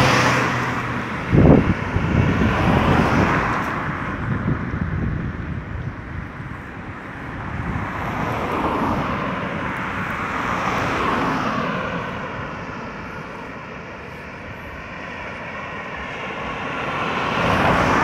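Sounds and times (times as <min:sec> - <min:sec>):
cars passing on road: 0:00.0 - 0:18.0.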